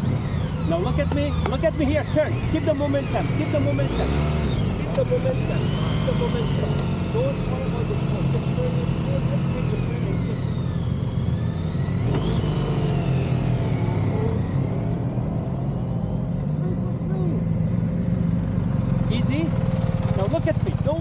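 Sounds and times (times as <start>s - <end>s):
rising whine: 0.0s - 19.4s
motorcycle engines low hum: 0.0s - 21.0s.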